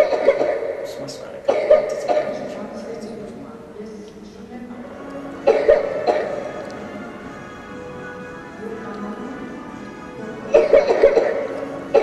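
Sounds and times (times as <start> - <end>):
person coughing: 0.0 - 0.8, 1.5 - 2.6, 5.4 - 6.6, 10.5 - 12.0.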